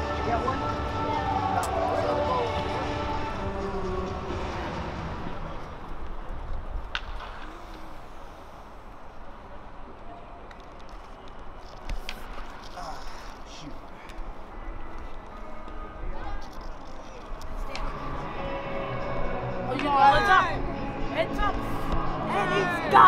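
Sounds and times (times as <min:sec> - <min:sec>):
music: 0:00.0 - 0:05.9, 0:17.4 - 0:23.0.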